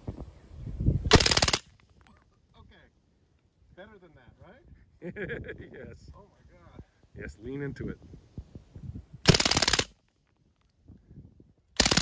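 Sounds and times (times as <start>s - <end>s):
suppressed submachine gun bursts: 9.3s - 9.9s, 11.8s - 12.0s.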